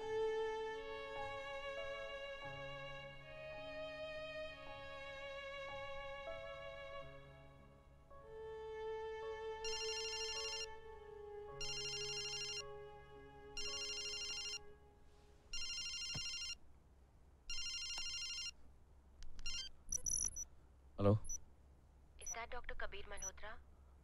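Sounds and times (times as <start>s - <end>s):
soft string music: 0.0s - 16.4s
phone ringing electronic trill: 9.7s - 10.7s, 11.6s - 12.6s, 13.6s - 14.6s, 15.6s - 16.6s, 17.5s - 18.5s, 19.4s - 20.4s.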